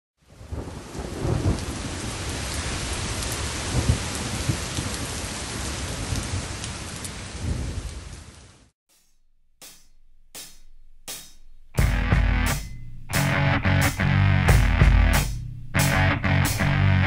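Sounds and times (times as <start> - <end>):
steady rain hiss: 0.2 - 8.7
thunder rolling: 0.4 - 6.5.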